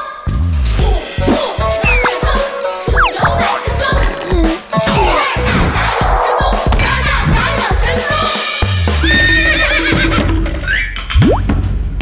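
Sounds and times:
background music: 0:00.0 - 0:12.0
horse whinnying: 0:09.0 - 0:10.8.

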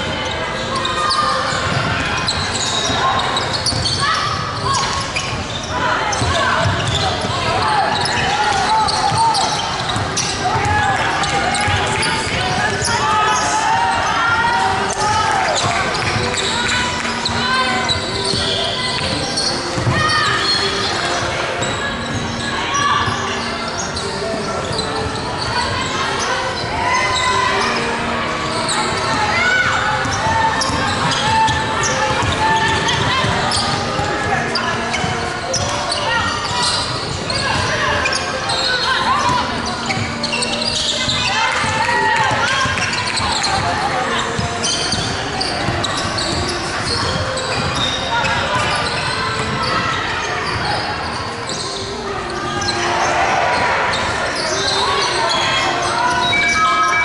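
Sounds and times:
players calling out: 0:00.1 - 0:57.0.

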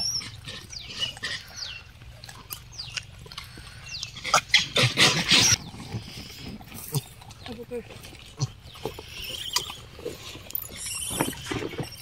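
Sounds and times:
monkeys chirping high: 0:00.0 - 0:05.7, 0:08.4 - 0:12.0.

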